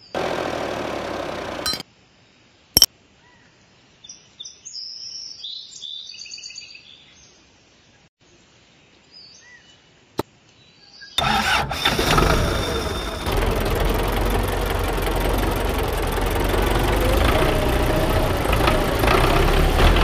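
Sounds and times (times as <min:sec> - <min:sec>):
tractor engine idling: 0:00.0 - 0:01.8, 0:11.2 - 0:20.0.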